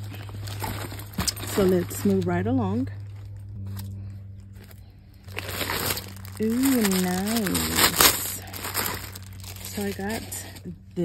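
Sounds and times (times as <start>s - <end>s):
faint rustles: 0.0s - 10.7s
higher steady tone: 0.0s - 11.0s
low steady hum: 0.0s - 11.0s.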